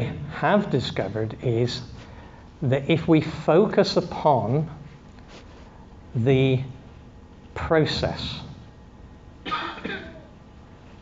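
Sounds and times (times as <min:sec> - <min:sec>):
person coughing: 0:09.4 - 0:10.4.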